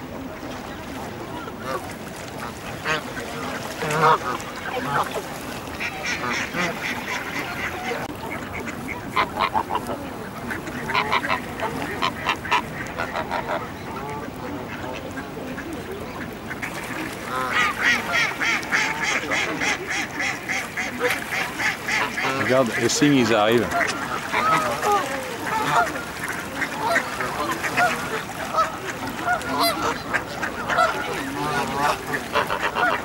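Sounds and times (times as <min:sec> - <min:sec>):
ducks quacking: 0:01.0 - 0:33.0
geese honking: 0:01.4 - 0:33.0.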